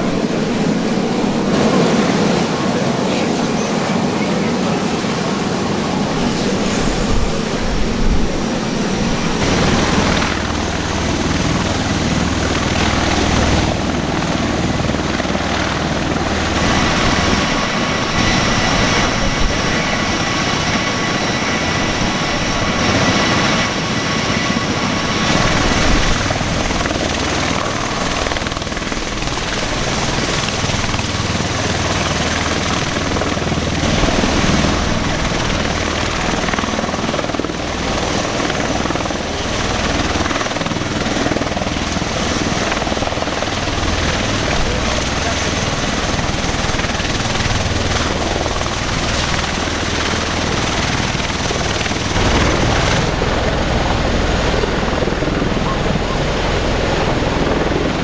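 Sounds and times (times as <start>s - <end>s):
helicopter rotors and engines: 0.0s - 58.0s.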